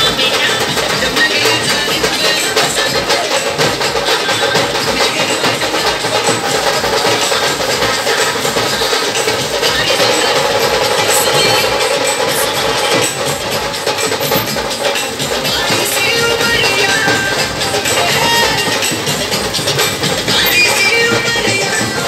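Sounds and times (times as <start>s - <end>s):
steady drumbeat: 0.0s - 22.0s
street band music: 0.0s - 22.0s.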